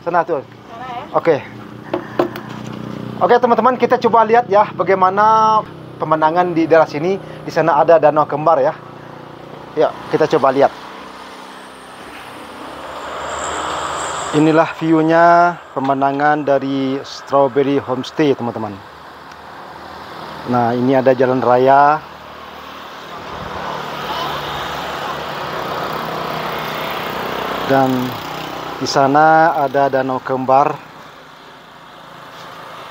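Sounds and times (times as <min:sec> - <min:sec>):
vehicle engine hum: 0:00.0 - 0:32.9.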